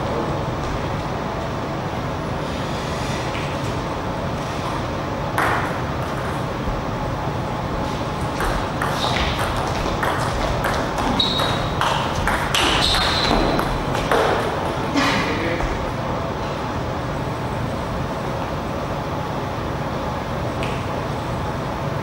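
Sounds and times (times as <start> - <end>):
steady low hum: 0.0 - 22.0
table tennis ball tapping: 8.2 - 14.6
short high squeaks: 11.1 - 11.8.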